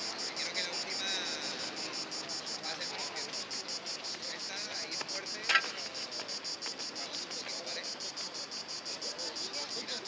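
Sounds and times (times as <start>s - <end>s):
insects chirping trill: 0.0s - 10.0s.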